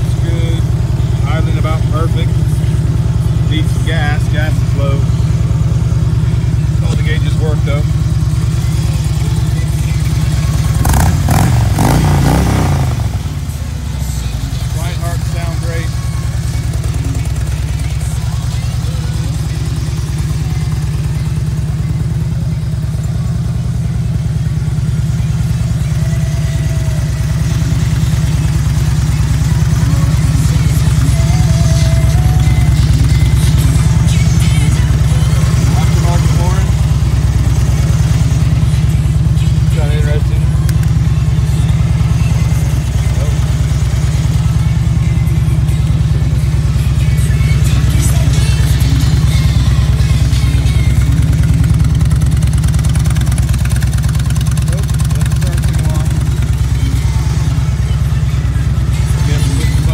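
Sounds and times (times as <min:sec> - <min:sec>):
motorcycle engine idling: 0:00.0 - 0:59.9.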